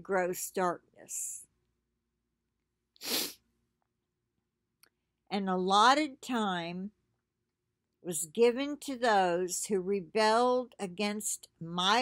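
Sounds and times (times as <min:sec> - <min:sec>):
sharp breath: 0:03.0 - 0:03.4.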